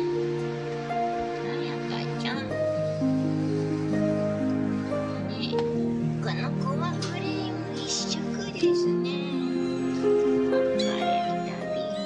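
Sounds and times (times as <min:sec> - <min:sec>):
gentle instrumental music: 0:00.0 - 0:12.0.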